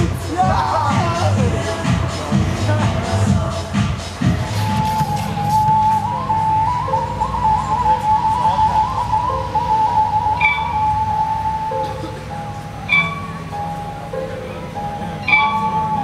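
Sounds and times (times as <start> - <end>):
held lead melody: 0.0 - 16.0
steady low drone: 0.0 - 16.0.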